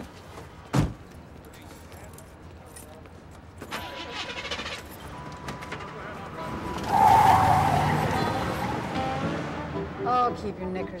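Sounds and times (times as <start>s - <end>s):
car engine starting: 3.7s - 10.1s.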